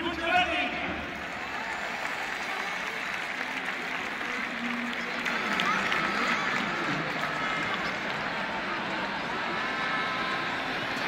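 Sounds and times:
stadium crowd applauding: 0.0 - 11.0.

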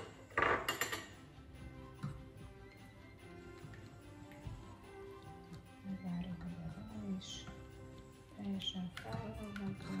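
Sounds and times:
kitchen utensils clattering: 0.0 - 1.3
faint background music: 0.0 - 10.0.

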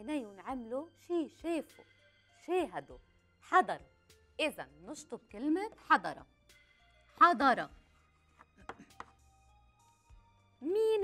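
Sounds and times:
chalk tapping on blackboard: 8.4 - 9.2.

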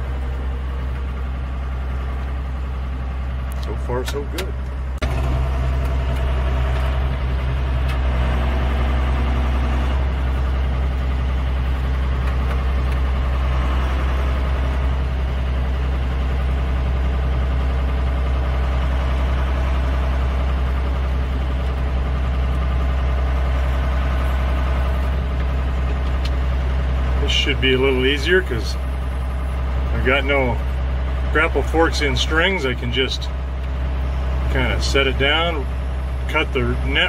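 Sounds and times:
tractor engine running: 0.0 - 37.0.

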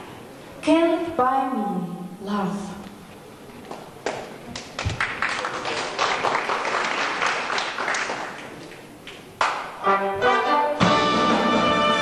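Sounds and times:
hand claps: 3.7 - 9.8.

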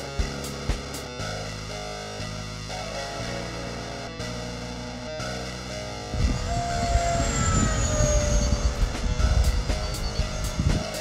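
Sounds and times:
electric ducted-fan whine: 0.0 - 11.0
wind buffeting on microphone: 6.1 - 11.0.

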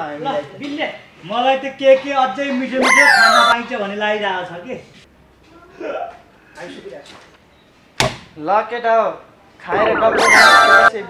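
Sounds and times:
man speaking: 9.7 - 11.0.

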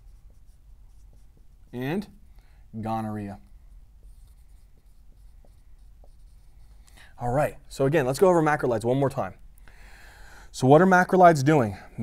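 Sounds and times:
marker scratching on whiteboard: 0.0 - 2.1, 3.4 - 7.0.

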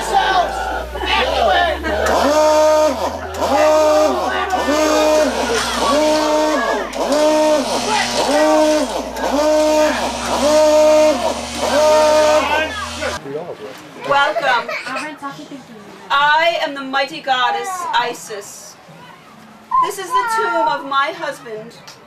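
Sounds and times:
steady low hum: 0.0 - 13.2.

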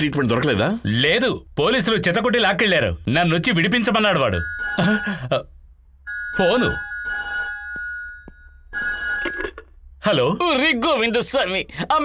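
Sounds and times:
telephone ringing: 4.2 - 5.4, 6.1 - 9.7.

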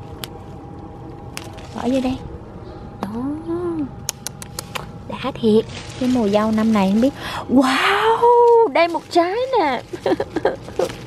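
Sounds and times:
faint steady hum: 0.0 - 11.0
strawberry stems snapping: 4.0 - 4.9.

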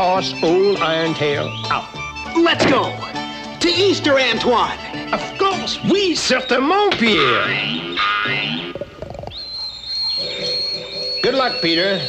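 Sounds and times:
high whistling tone: 0.0 - 3.9, 4.9 - 12.0.

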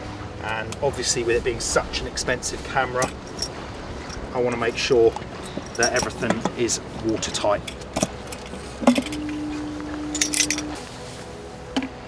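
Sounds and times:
low hum: 0.0 - 12.0
light metallic clinks: 5.4 - 6.6.

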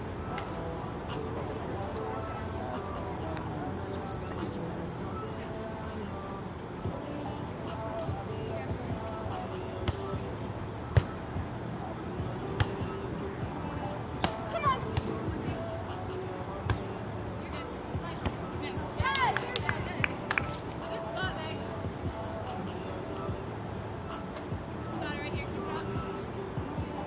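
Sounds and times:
players shouting calls: 0.0 - 27.0.

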